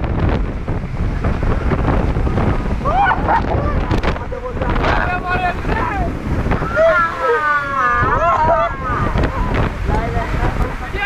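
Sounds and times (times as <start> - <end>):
dense rumble: 0.0 - 11.0
storm wind buffeting microphone: 0.0 - 11.0.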